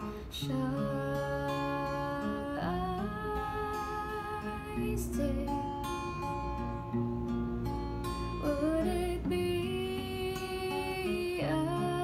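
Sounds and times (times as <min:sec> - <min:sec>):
woman singing long notes: 0:00.0 - 0:06.4, 0:08.3 - 0:12.0
acoustic guitar: 0:00.0 - 0:12.0.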